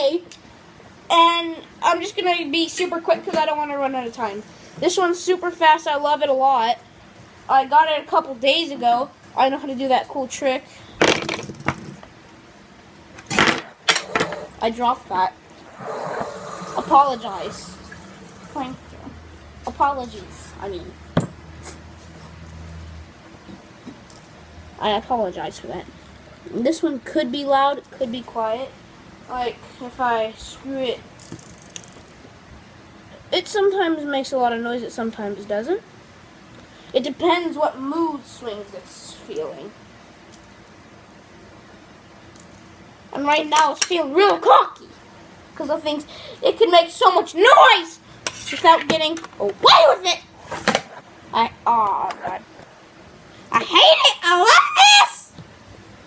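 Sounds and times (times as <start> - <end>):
fidget spinner whirring: 13.8 - 20.9.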